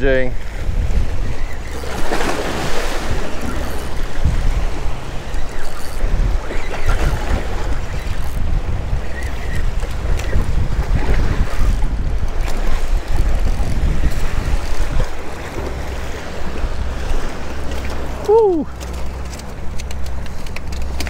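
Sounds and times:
waves washing against rocks: 0.0s - 5.4s
wind buffeting microphone: 0.0s - 21.0s.

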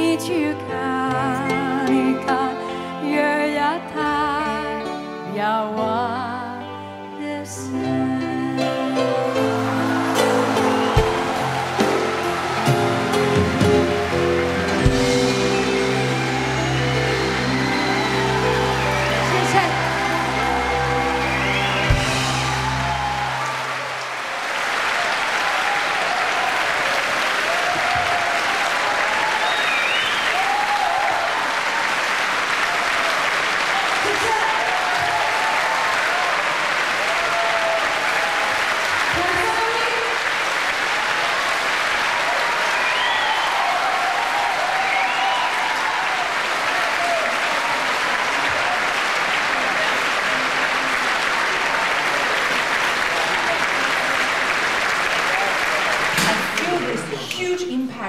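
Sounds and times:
audience applauding: 8.7s - 58.0s
shouts and cheers: 9.2s - 57.3s.

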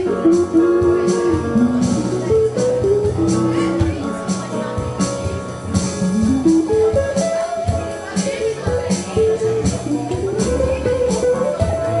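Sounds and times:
drums: 0.0s - 12.0s
electric guitar melody: 0.0s - 12.0s
keyboard chords: 0.0s - 12.0s.

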